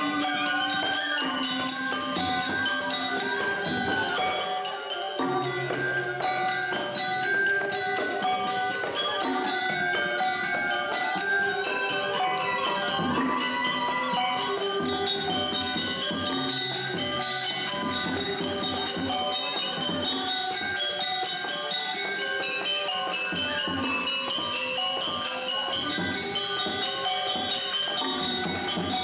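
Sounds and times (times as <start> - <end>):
drums: 0.0 - 4.4, 5.2 - 29.0
bronze metallophones ringing: 0.0 - 29.0.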